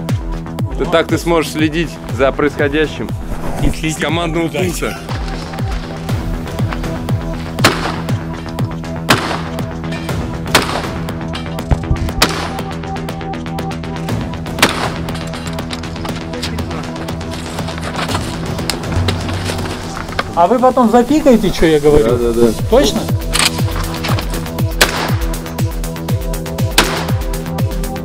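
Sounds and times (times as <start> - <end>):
background music: 0.0 - 28.0
gunshots: 7.6 - 8.1, 9.0 - 9.6, 10.5 - 11.0, 11.7 - 12.7, 14.5 - 15.2, 24.8 - 25.4, 26.7 - 27.2.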